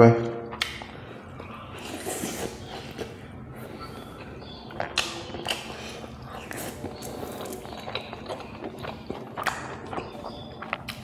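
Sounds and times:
wet mouth clicks and smacks: 0.5s - 1.5s, 4.7s - 11.0s
person chewing: 0.5s - 11.0s.

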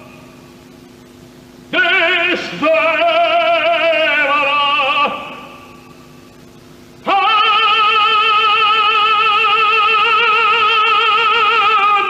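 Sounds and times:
operatic tenor singing: 1.7s - 5.5s, 7.0s - 12.0s.

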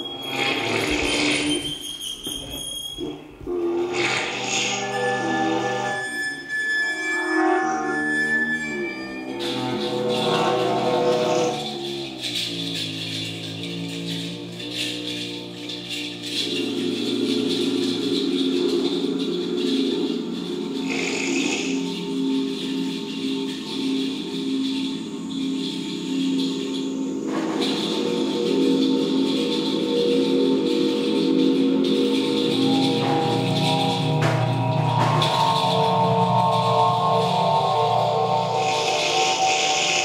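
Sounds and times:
experimental electronic drones: 3.0s - 40.0s.

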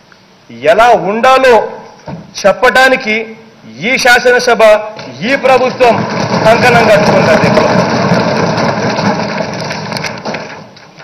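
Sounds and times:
people thumping desks in applause: 5.0s - 11.0s.

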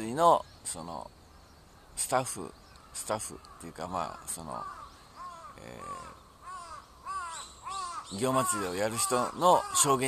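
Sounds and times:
bird calling: 0.0s - 10.0s.

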